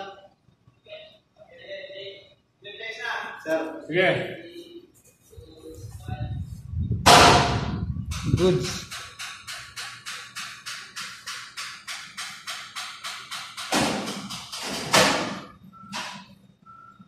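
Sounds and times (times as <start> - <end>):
loud thuds: 6.9 - 9.2.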